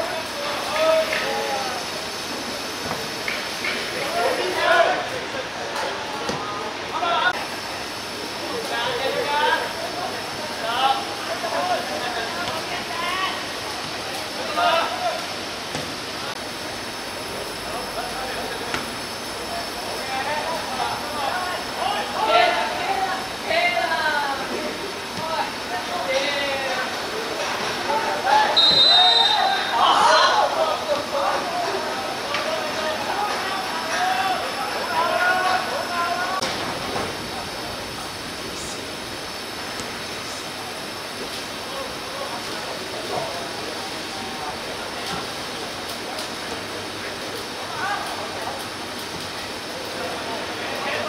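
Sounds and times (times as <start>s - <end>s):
outdoor background hiss: 0.0s - 51.0s
players shouting: 28.0s - 36.4s
high whistle blast: 28.5s - 29.8s.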